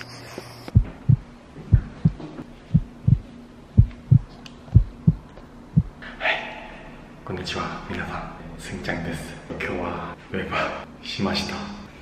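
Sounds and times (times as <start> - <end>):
heartbeat thumps: 0.7 - 6.0.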